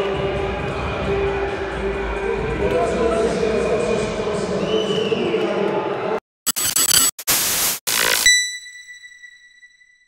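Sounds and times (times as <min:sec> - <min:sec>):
static-like noise bursts: 0:06.5 - 0:08.2.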